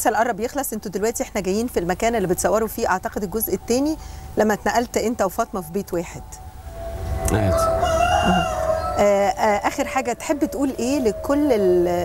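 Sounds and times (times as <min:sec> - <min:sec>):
rooster crowing: 0:06.3 - 0:12.0.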